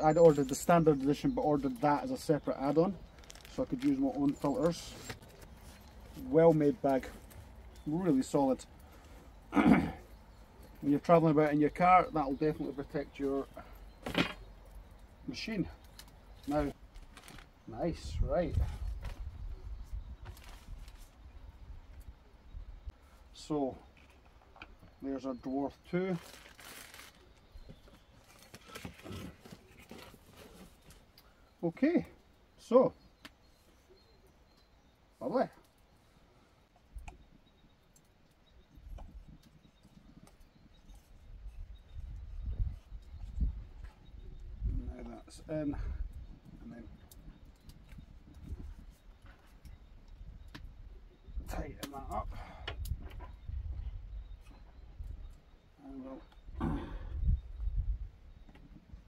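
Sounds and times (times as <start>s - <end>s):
soft handling sounds: 0.1s - 9.5s, 13.2s - 21.3s, 25.9s - 32.2s
packaging wrap crinkling: 3.0s - 6.2s, 26.1s - 30.6s.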